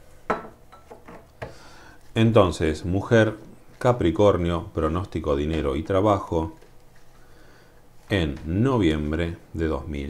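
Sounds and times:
cup knocks: 0.3s - 1.6s.

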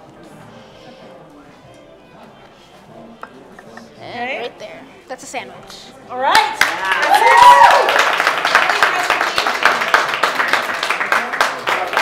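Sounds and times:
low background music: 0.0s - 8.4s
faint room murmur: 0.0s - 12.0s.

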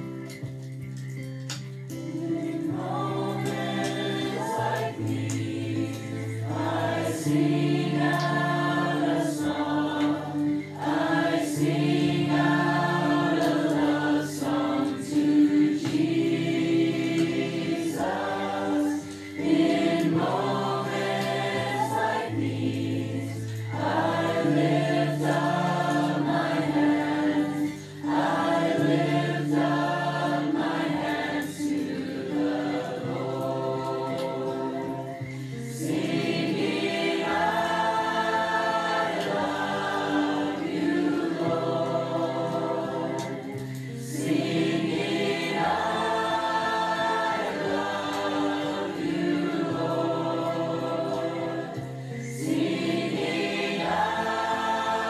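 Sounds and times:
choir singing held chords: 1.9s - 55.0s.

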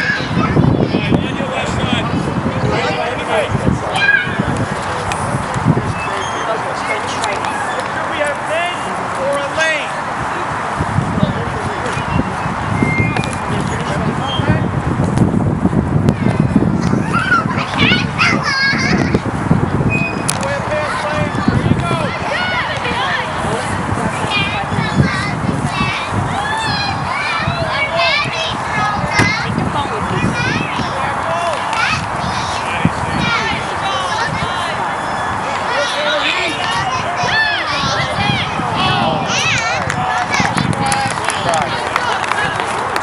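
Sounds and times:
children shouting: 0.0s - 1.0s, 3.9s - 4.6s, 16.1s - 19.4s, 20.5s - 23.6s, 24.3s - 43.0s.

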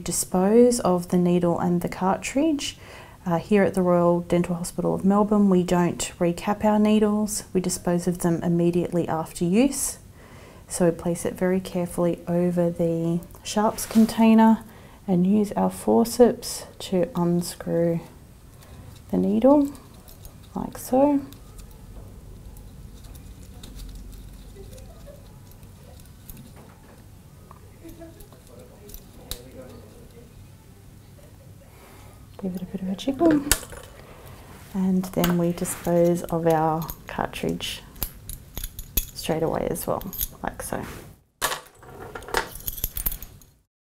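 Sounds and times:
steady low hum: 0.0s - 40.6s
metal forceps clicking and scraping: 18.5s - 30.2s, 35.0s - 40.7s, 42.1s - 43.6s
metal instrument clinking: 37.9s - 40.5s, 42.3s - 43.6s.

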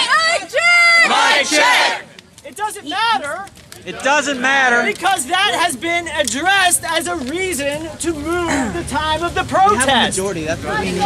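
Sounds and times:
crowd chanting in unison: 1.0s - 2.1s.

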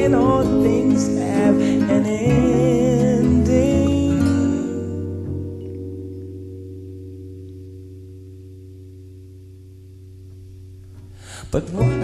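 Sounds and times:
held guitar chord ringing: 0.0s - 12.0s.

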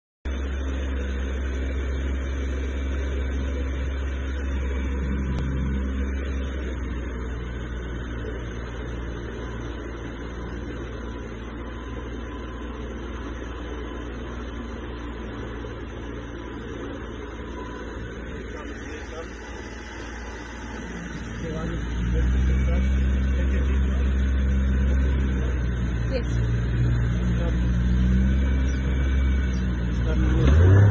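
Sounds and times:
speedboat engine rumble: 0.3s - 12.6s, 15.8s - 30.9s
wind: 0.3s - 30.9s.

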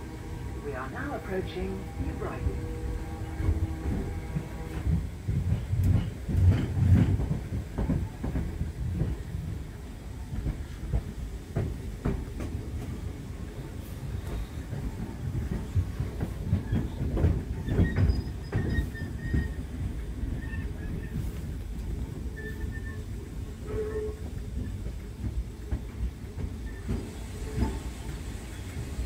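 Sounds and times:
train wheels rumbling on rails: 0.0s - 29.0s
wheels clacking over rail joints: 14.2s - 29.0s.

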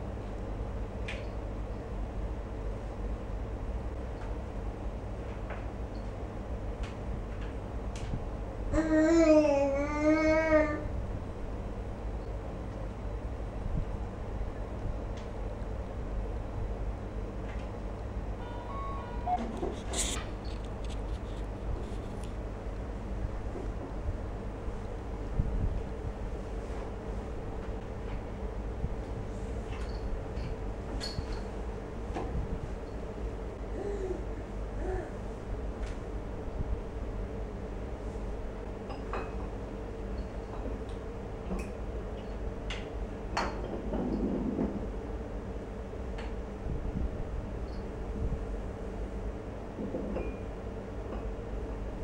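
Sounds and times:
short electronic tune: 18.4s - 19.6s.

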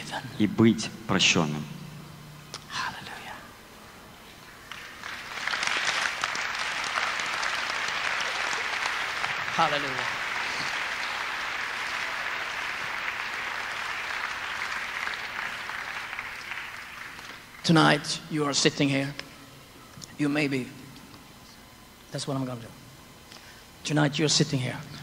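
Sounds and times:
audience applause: 4.7s - 17.6s.

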